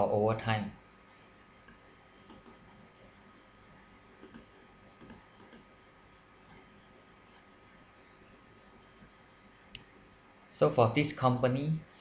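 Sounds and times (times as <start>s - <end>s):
faint computer mouse clicks: 1.6s - 2.6s, 4.2s - 5.7s.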